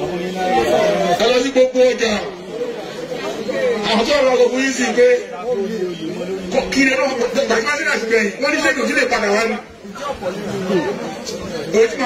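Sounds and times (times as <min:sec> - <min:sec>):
crowd chatter: 0:00.0 - 0:12.0
people talking: 0:00.0 - 0:12.0.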